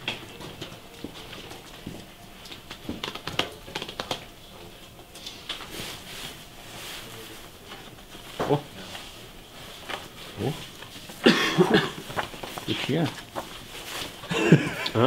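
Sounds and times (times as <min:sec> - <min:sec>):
record sleeves tapping and clacking: 0:00.0 - 0:05.7.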